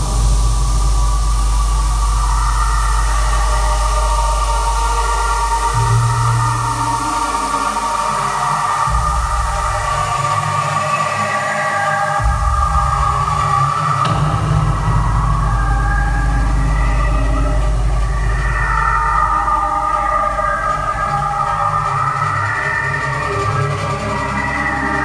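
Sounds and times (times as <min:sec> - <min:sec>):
deep bass line: 0:00.0 - 0:10.8, 0:12.2 - 0:22.2
held synth chords: 0:00.0 - 0:25.0.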